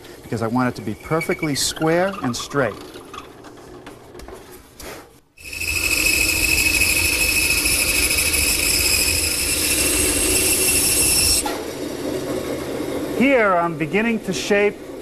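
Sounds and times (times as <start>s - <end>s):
band saw cutting wood: 5.4s - 11.8s.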